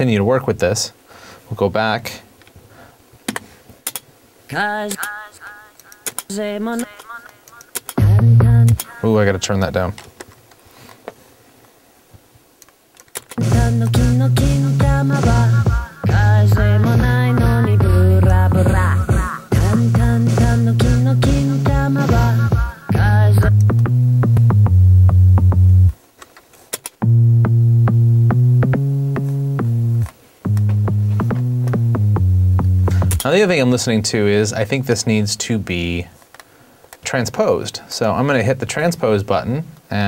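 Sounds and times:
music with drum beat: 8.0 - 8.8, 13.4 - 25.8, 27.0 - 33.2.

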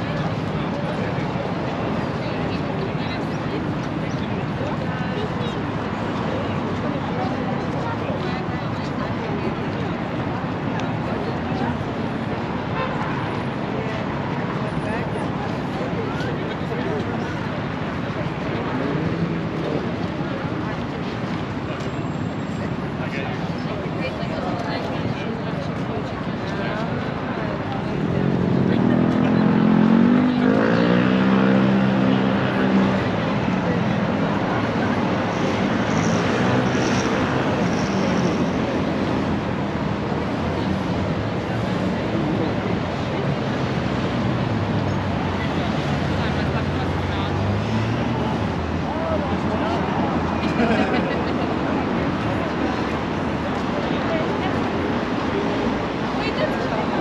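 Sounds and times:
crowd chatter: 0.0 - 57.0
people talking: 0.0 - 57.0
road traffic noise: 0.0 - 57.0.

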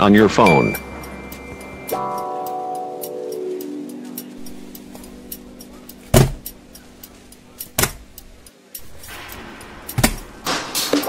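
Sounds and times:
bell-like jingle of descending notes: 0.1 - 2.8.

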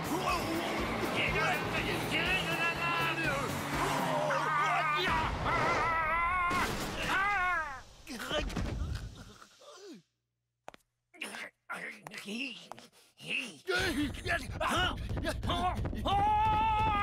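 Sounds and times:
music: 0.0 - 4.3
cartoon character warbling yell: 3.9 - 7.8.

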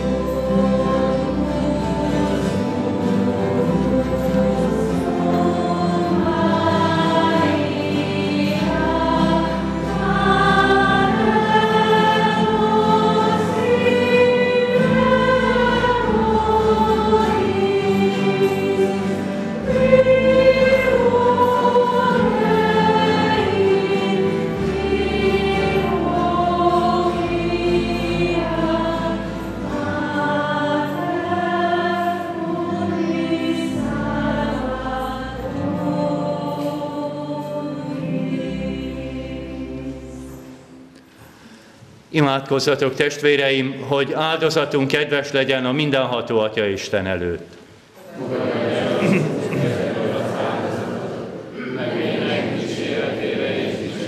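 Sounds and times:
choir singing a hymn: 0.0 - 41.6, 48.0 - 54.0.

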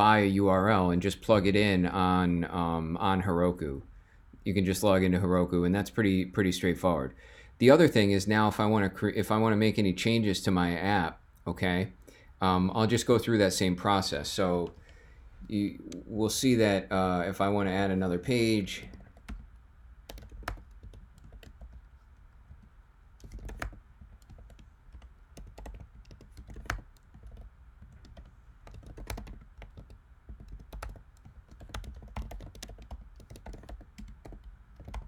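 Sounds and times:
computer keyboard typing: 18.8 - 35.0.

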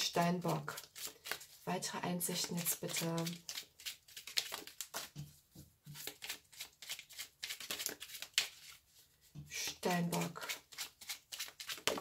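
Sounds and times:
cards being shuffled: 0.5 - 1.6, 2.3 - 5.2, 5.9 - 8.9, 10.1 - 12.0.

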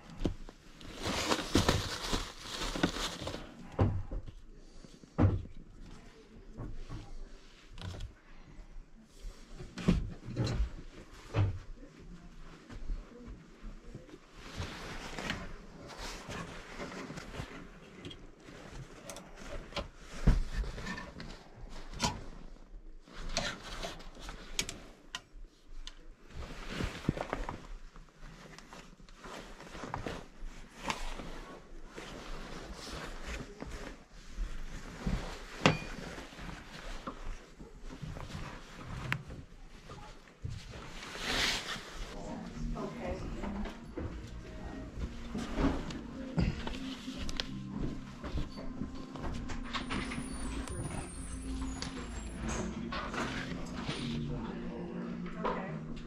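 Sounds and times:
garments rustling: 0.0 - 3.8, 10.7 - 56.0.

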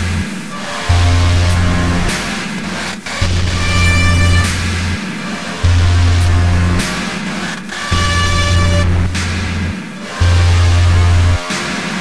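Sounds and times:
electronic rock music: 0.0 - 12.0.

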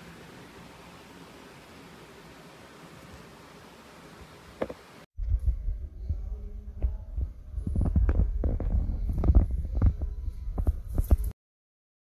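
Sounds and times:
low rumble: 5.2 - 11.3.

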